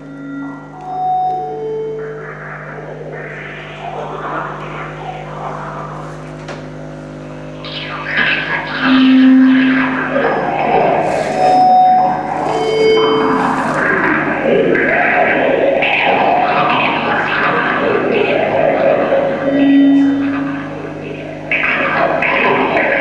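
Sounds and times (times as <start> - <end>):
low electronic drone: 0.0 - 23.0
pure held tones: 0.0 - 23.0.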